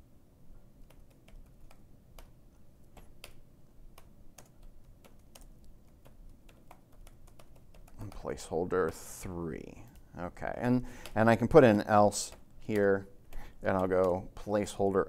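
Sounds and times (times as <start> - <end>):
typing on computer keyboard: 0.8 - 10.1, 11.0 - 14.6.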